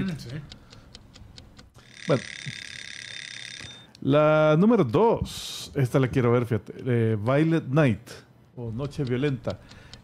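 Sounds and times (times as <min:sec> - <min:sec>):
clock ticking: 0:00.0 - 0:03.0, 0:08.6 - 0:10.0
alarm bell ringing: 0:01.8 - 0:03.9.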